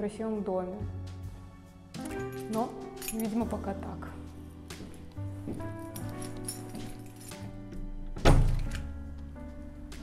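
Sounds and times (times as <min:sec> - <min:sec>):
background music: 0:00.0 - 0:10.0
heavy door thunk: 0:07.8 - 0:09.0.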